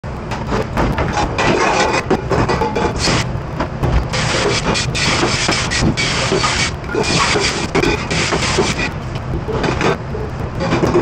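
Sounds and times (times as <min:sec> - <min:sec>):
steady low rumble: 0:00.0 - 0:11.0
water sprayer hissing on metal: 0:04.1 - 0:08.9.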